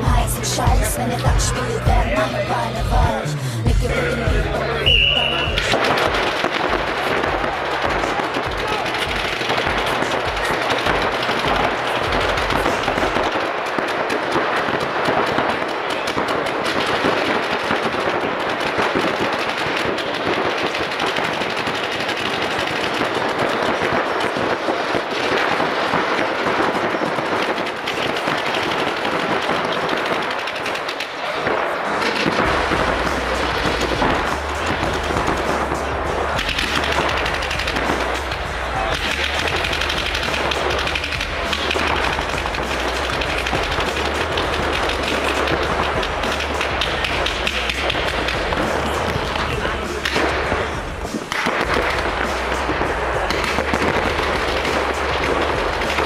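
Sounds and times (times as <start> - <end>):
background music with bass beat: 0.0 - 13.4, 32.3 - 56.0
paintball markers firing: 4.8 - 56.0.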